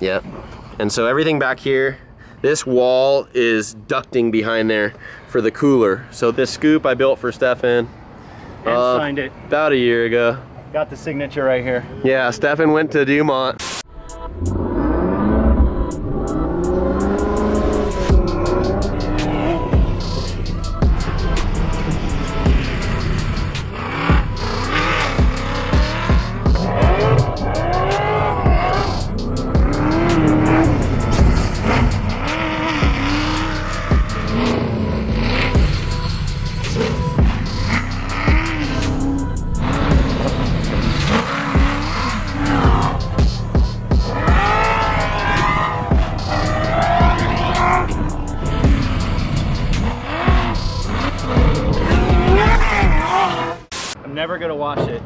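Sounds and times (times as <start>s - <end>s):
engine revving: 14.3s - 53.7s
music with steady beat: 15.9s - 53.1s.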